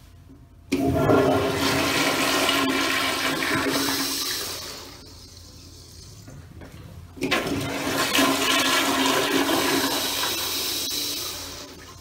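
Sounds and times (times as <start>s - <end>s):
toilet flush water rush: 0.7s - 5.6s, 7.2s - 12.0s.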